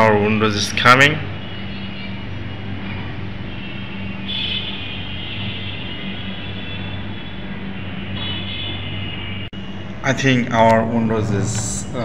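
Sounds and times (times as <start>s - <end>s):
machine whir with electrical hum: 0.0s - 12.0s.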